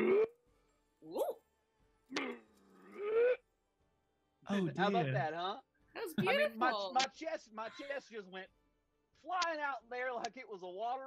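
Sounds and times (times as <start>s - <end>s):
man imitating frog croak: 0.0s - 0.3s.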